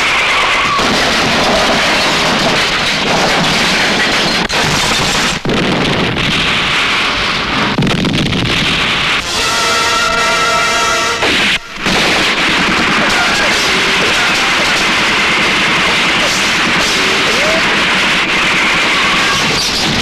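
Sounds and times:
car explosion: 0.0s - 10.0s, 11.1s - 20.0s
car chase noise: 11.2s - 20.0s.

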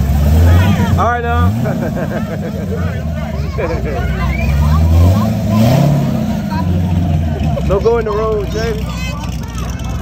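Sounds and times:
car exhaust rumbling: 0.0s - 10.0s.

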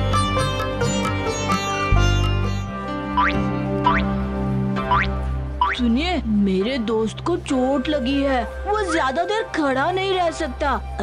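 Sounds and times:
cartoon music with low notes: 0.0s - 7.0s.

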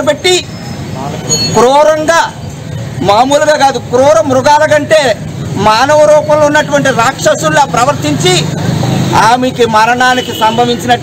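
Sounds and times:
man speaking loudly: 0.0s - 2.4s, 3.0s - 11.0s.

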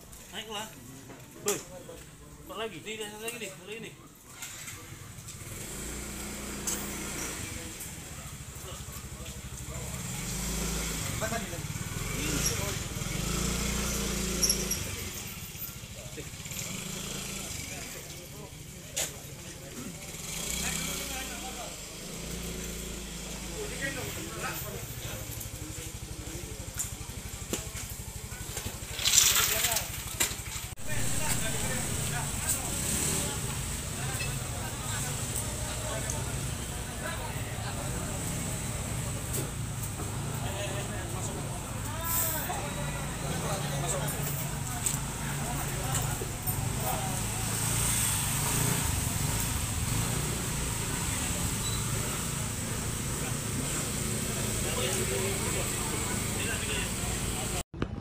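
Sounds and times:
people talking indistinctly: 0.0s - 30.2s, 30.8s - 57.6s
motorcycle engine running: 4.6s - 57.6s.

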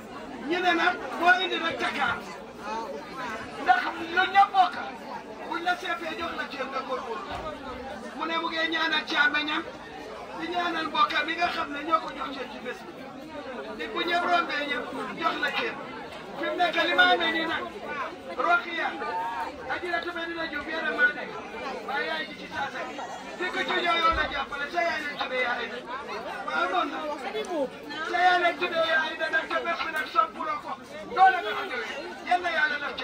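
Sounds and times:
people chattering: 0.0s - 33.0s.

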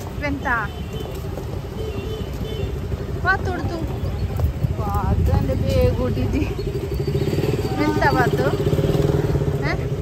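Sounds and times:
motorcycle passing: 0.0s - 10.0s
road traffic rumble: 0.0s - 10.0s.

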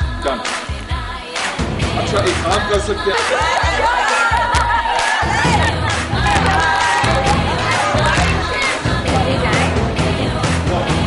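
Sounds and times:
loud music with bass line: 0.0s - 11.0s
crowd cheering and shouting: 3.0s - 10.1s.

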